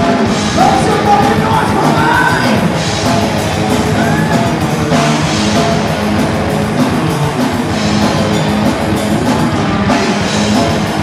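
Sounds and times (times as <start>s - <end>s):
distorted electric guitars: 0.0s - 11.0s
rapid drumming: 0.0s - 11.0s
vocalist yelling: 0.6s - 2.7s.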